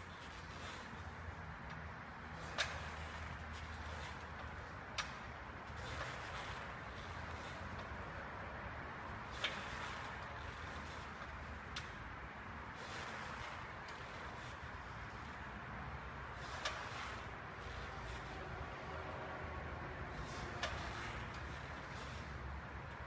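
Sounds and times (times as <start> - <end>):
exercise bench clicking: 1.6 - 8.0.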